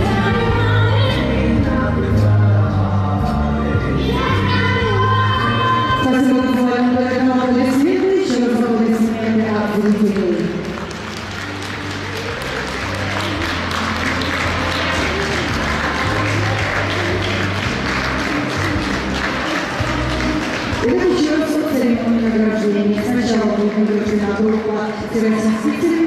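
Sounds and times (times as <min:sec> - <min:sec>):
ballroom dance music: 0:00.0 - 0:26.0
audience applauding: 0:09.8 - 0:21.5.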